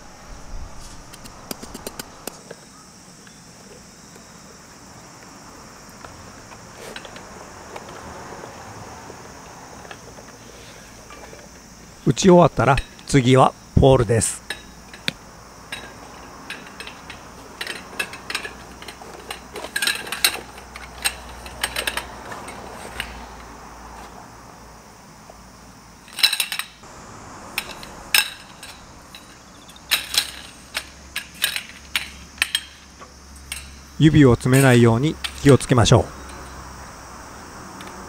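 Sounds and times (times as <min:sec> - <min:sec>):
metal tent poles clinking: 0:14.2 - 0:23.4, 0:26.0 - 0:26.8, 0:27.5 - 0:36.6.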